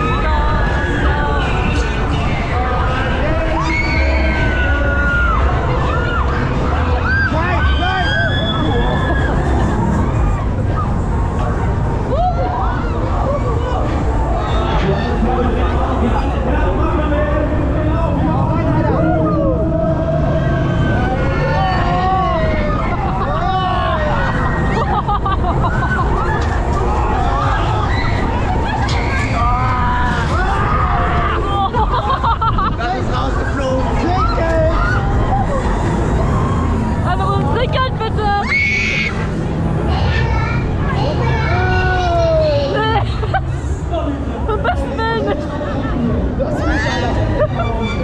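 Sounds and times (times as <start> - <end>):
ride rumbling: 0.0 - 48.0
voices shouting and calling: 0.0 - 48.0.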